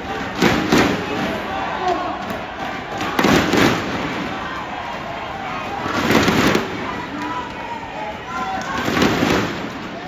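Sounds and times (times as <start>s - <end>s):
arena crowd din of voices: 0.0s - 10.0s
loud crowd noise bursts: 0.0s - 10.0s.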